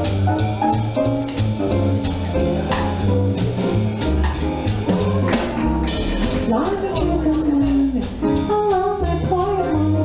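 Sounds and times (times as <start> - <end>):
double bass plucking: 0.0 - 10.0
jazz combo playing: 0.0 - 10.0.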